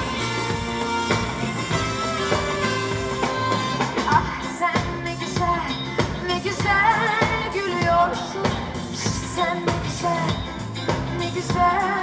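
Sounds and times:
live pop band playing: 0.0 - 12.0
person singing: 1.5 - 12.0.

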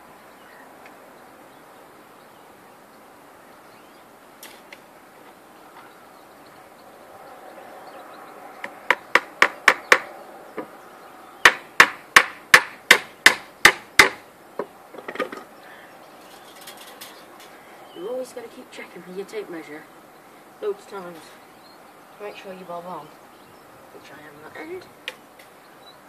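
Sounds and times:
hammer striking timber: 8.6 - 10.7, 11.4 - 14.2.

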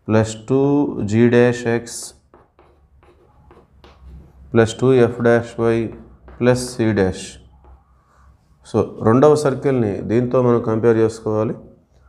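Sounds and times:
chalk scratching on blackboard: 1.9 - 9.0.

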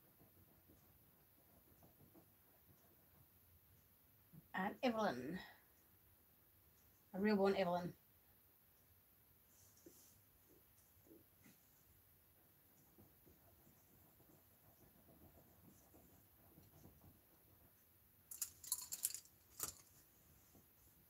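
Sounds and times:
paintbrush clattering on plastic tray: 18.3 - 20.0.

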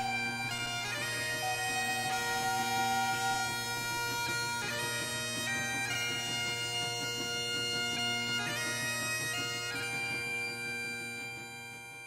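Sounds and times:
bagpipe music with drones: 0.0 - 12.0.

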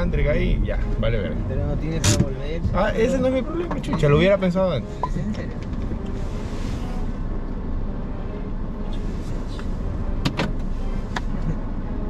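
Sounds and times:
car cabin rumble: 0.0 - 12.0.

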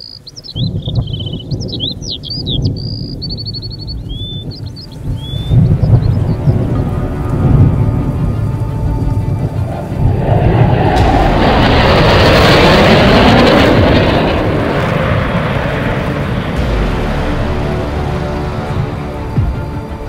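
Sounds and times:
bird chirps: 0.0 - 6.5
deep rumble: 0.5 - 20.0
loud rushing noise: 5.0 - 20.0.

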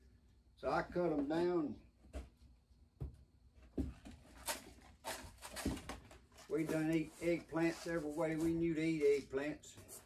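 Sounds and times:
plastic cups knocking and rustling: 3.0 - 7.6.

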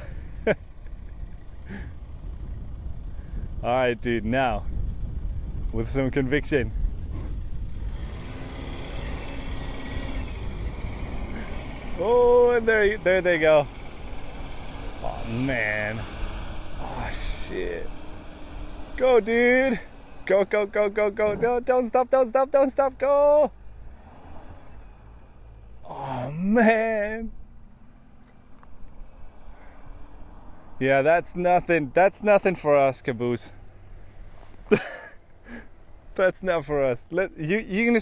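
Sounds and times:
engine droning under load: 0.0 - 38.0
faint engine tone: 0.0 - 38.0.

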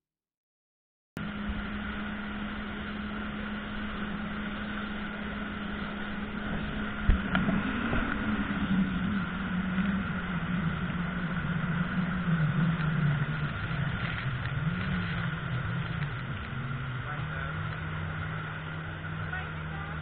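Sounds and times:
jet ski engine: 1.2 - 20.0
rushing water and spray: 1.2 - 20.0.

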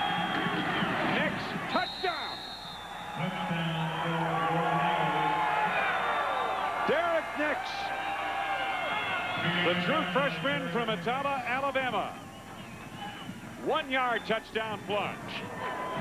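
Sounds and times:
stadium crowd cheering: 0.0 - 16.0
high whistle: 1.7 - 4.1, 12.0 - 13.4
players whooping: 2.7 - 10.0, 15.4 - 16.0.

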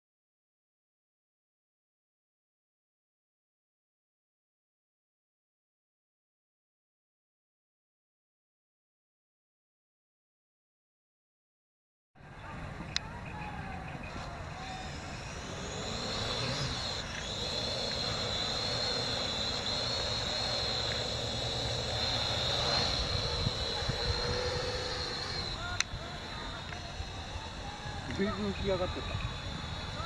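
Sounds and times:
drone rotors whining: 12.3 - 30.0.

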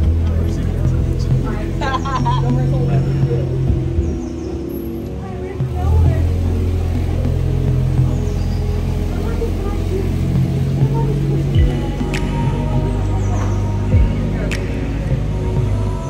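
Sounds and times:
engine low drone: 0.0 - 16.0.

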